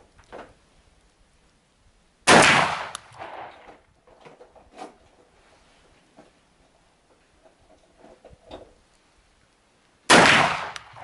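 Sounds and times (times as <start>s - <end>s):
shotgun shot: 2.3s - 3.8s, 10.1s - 11.0s.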